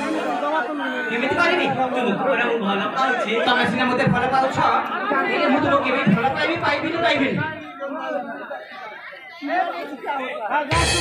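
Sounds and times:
murmur of chatter: 0.0s - 11.0s.

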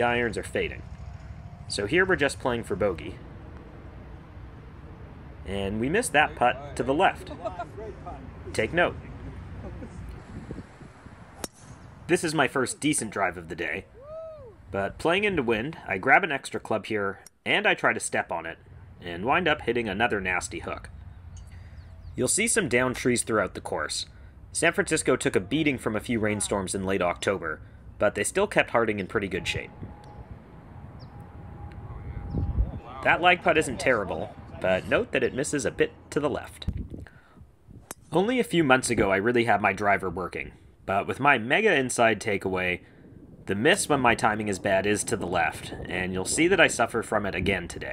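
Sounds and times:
low outdoor rumble: 0.0s - 47.9s
golf club striking ball: 11.4s - 11.9s.

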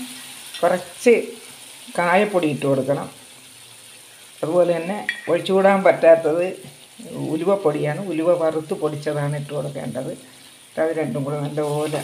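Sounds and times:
oil and spices sizzling: 0.0s - 12.0s.

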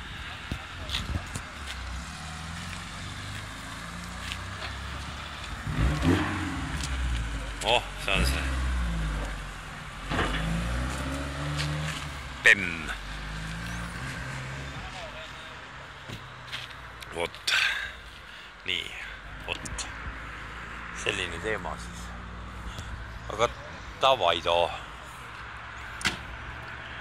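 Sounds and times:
car engine humming: 0.0s - 27.0s.

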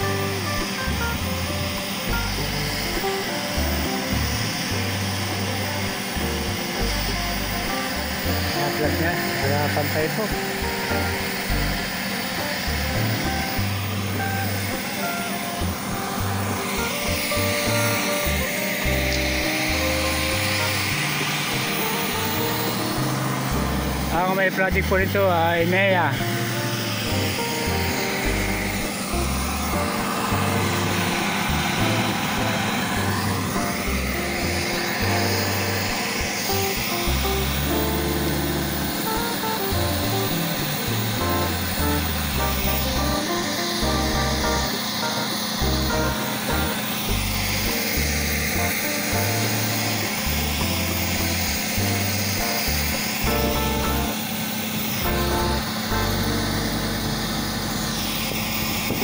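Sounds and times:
background music with bass line: 0.0s - 54.2s, 55.0s - 59.0s
steady drone: 0.0s - 59.0s.

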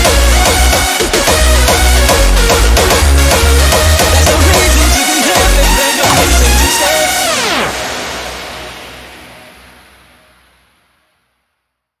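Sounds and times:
hissing wash of dance track: 0.2s - 10.6s.

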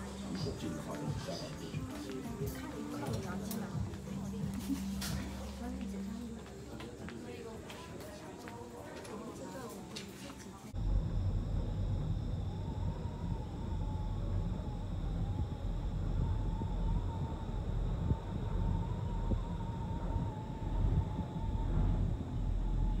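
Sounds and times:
faint wavering whine: 0.0s - 7.5s, 10.6s - 23.0s
gondola cabin rumble: 10.8s - 23.0s.

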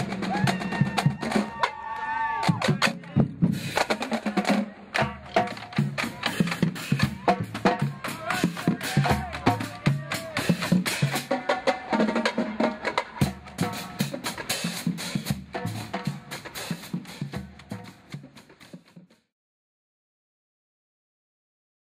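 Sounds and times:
drumline playing snare and tenor drums: 0.0s - 19.3s
voices: 0.2s - 14.0s.

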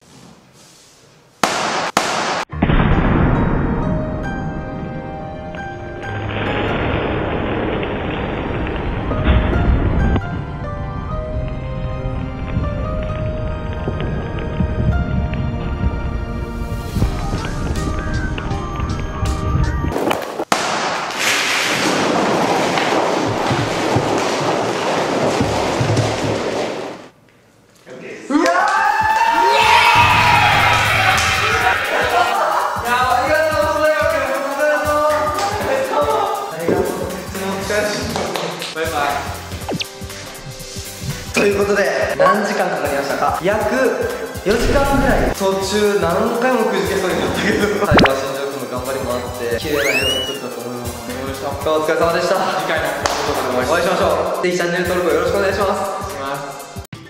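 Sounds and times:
balloon bursting with balls: 1.4s - 3.8s, 19.9s - 27.2s, 39.6s - 40.0s, 47.9s - 48.2s, 49.7s - 50.4s.

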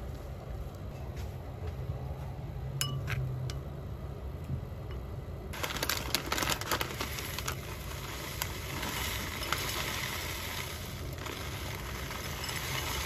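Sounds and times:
granola rattling into glass bowl: 5.6s - 13.0s.

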